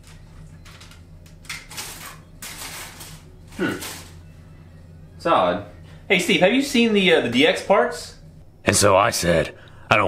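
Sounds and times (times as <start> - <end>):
plastic wrapping rustling: 1.5 - 4.2.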